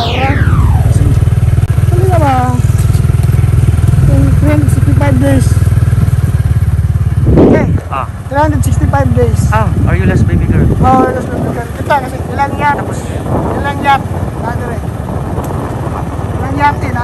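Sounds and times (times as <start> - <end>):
whoosh sweeping down: 0.0 - 1.6
engine droning: 0.0 - 17.0.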